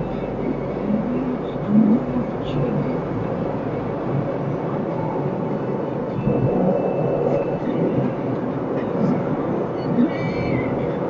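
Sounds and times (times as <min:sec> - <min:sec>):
car engine hum: 0:00.0 - 0:11.0
road and tyre noise: 0:00.0 - 0:11.0.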